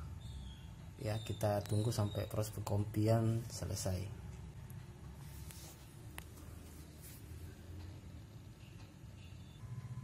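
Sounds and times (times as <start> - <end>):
phone rustling in hand: 5.2 - 7.4.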